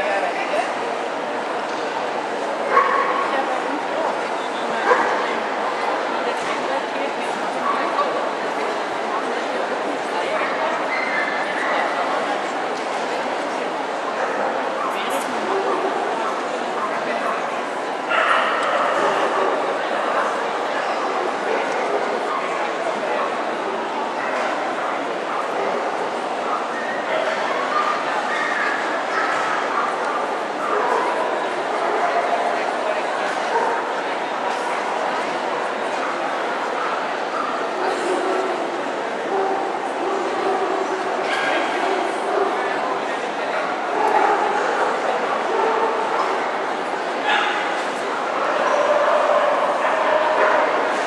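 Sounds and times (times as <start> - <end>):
crowd chatter: 0.0 - 51.0.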